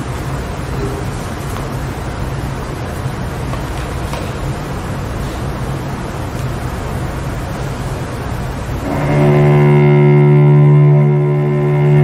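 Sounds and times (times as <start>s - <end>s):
hiss and low rumble: 0.0s - 12.0s
string ensemble bowed chord: 8.8s - 12.0s.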